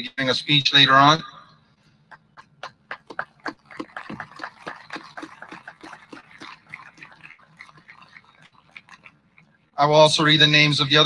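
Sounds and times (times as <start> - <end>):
audience applause: 2.4 - 9.2.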